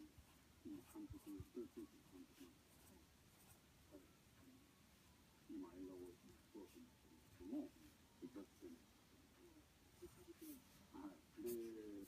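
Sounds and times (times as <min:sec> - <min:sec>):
faint muffled low talk: 0:00.0 - 0:12.0.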